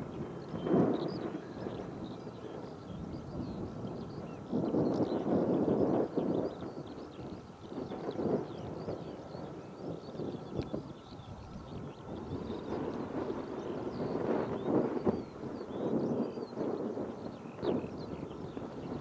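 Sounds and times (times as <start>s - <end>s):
wind gusting across microphone: 0.0s - 19.0s.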